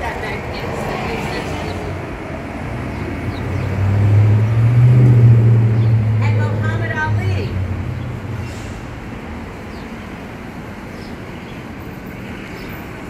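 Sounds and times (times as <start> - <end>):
passing vehicle engine rumble: 0.0 - 13.0
street noise: 0.0 - 13.0.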